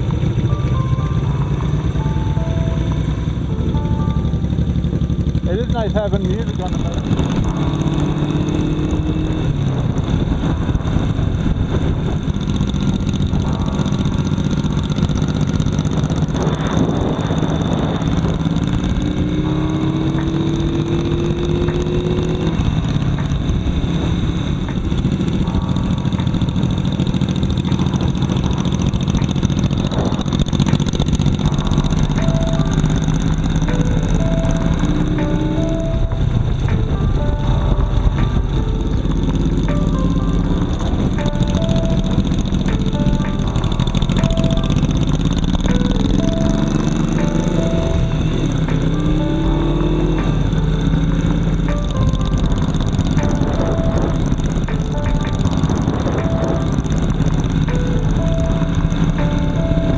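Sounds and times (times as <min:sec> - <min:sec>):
motorcycle running: 0:00.0 - 0:59.9
wind and road noise: 0:00.0 - 0:59.9
music from speaker: 0:13.0 - 0:59.9.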